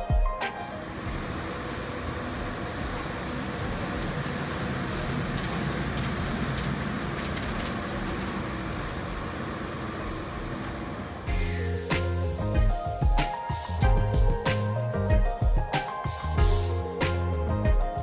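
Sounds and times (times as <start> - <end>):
road traffic rushing: 0.5 - 12.5.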